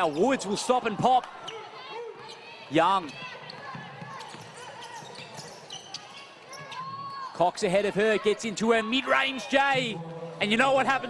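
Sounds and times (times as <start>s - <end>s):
indoor arena background noise: 0.0s - 11.0s.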